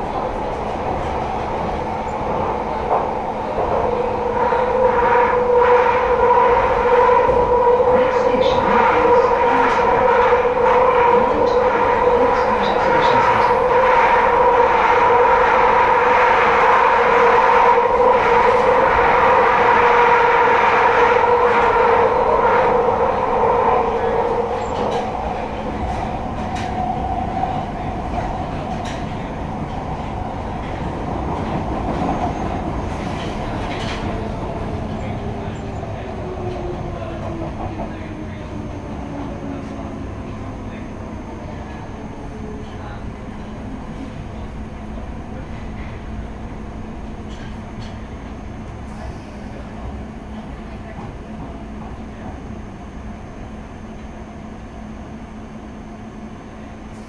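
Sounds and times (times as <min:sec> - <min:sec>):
train running through a tunnel: 0:00.0 - 0:57.0.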